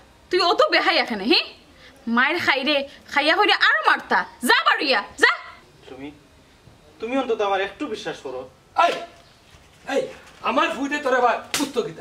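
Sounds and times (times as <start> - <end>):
woman speaking angrily: 0.3 - 5.6.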